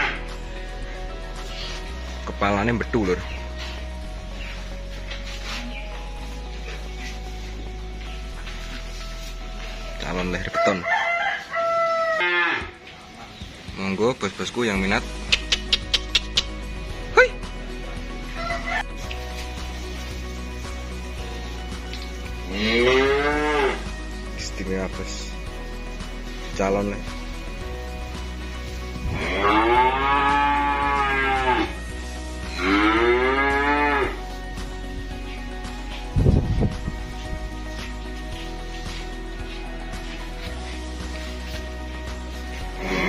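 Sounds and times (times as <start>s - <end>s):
man's voice: 2.2s - 3.4s, 24.4s - 25.4s
calf mooing: 11.7s - 12.8s, 22.5s - 23.8s, 29.1s - 31.8s, 32.5s - 34.2s.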